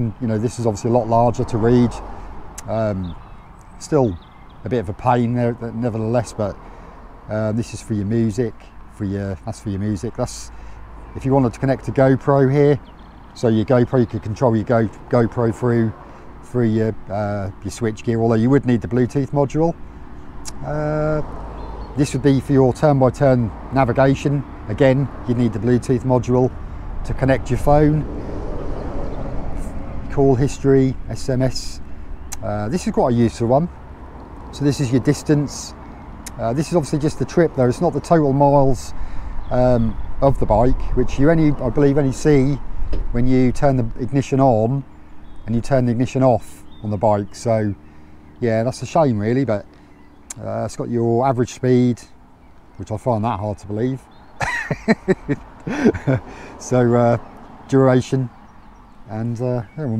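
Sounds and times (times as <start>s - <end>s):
man laughing: 54.4s - 56.6s.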